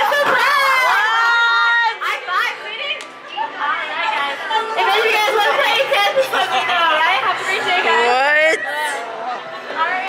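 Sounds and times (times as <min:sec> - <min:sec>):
voices chattering and calling out: 0:00.0 - 0:10.0.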